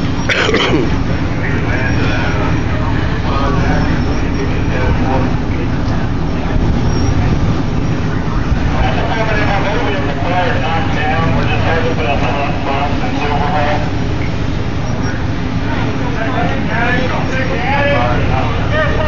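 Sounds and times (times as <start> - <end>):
diesel engine running: 0.0 - 19.0
faint voices: 0.0 - 19.0.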